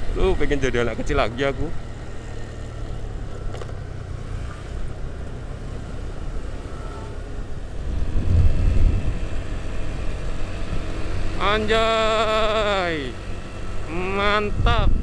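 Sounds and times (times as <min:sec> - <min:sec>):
scooter engine running: 0:00.0 - 0:14.7
wind rumble on microphone: 0:07.6 - 0:11.2, 0:14.4 - 0:15.0.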